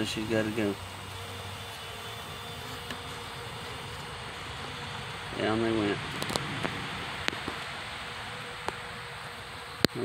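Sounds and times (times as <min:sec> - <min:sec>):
honeybee colony humming: 0:00.0 - 0:10.0.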